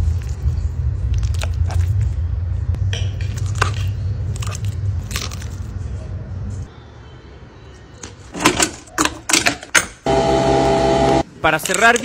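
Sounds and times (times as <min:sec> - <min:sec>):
coffee machine buzzing hum: 0:10.1 - 0:11.2.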